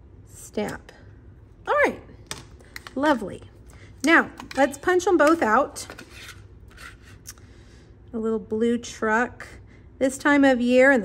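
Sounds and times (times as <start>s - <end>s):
cardstock scraping on plastic: 5.9s - 7.2s.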